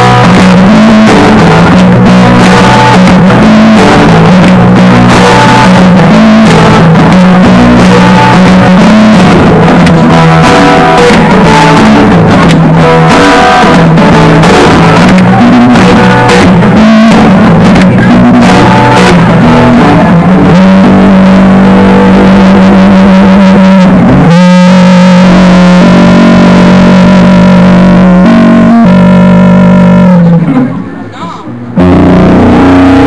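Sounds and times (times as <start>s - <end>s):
acoustic guitar music: 0.0s - 33.0s.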